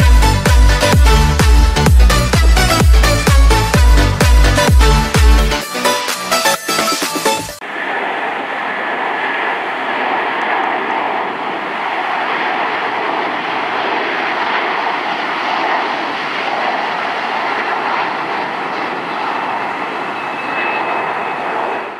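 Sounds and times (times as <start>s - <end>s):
distant jet engines rushing: 0.0s - 21.9s.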